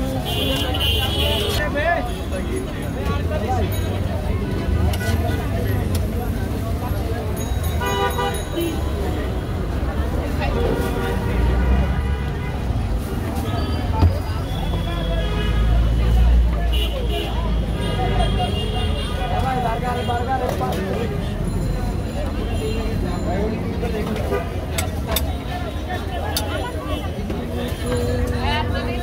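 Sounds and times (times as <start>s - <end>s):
traffic rumble: 0.0s - 29.0s
background voices: 20.4s - 29.0s.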